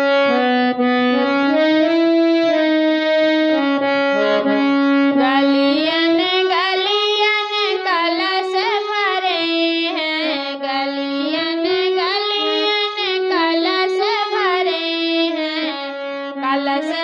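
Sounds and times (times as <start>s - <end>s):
harmonium melody: 0.0s - 17.0s
woman singing folk song: 5.2s - 17.0s.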